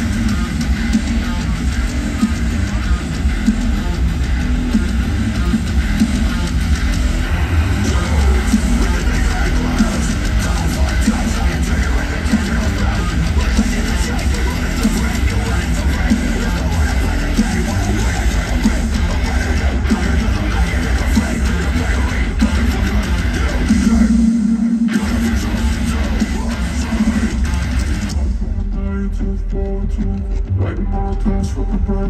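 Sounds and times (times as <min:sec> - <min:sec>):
metal band playing live: 0:00.0 - 0:32.0.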